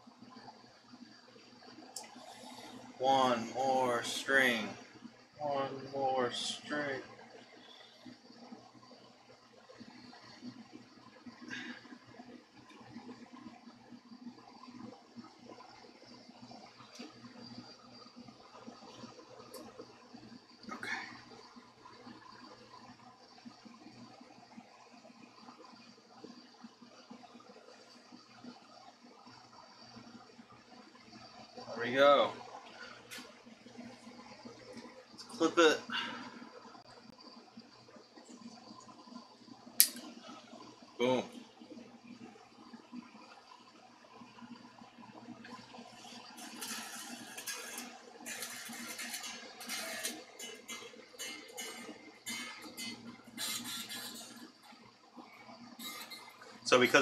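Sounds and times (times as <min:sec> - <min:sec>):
sharp click: 0:39.8 - 0:40.1
scratchy string handling noise: 0:46.4 - 0:54.7.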